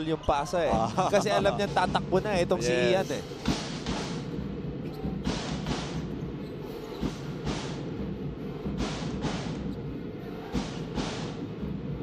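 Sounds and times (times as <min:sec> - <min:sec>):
drums beating: 0:00.7 - 0:06.4, 0:07.0 - 0:12.0.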